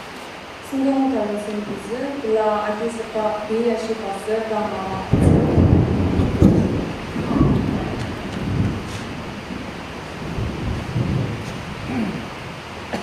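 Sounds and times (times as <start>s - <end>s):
steady hiss: 0.0s - 13.0s
low rumbling noise: 0.5s - 13.0s.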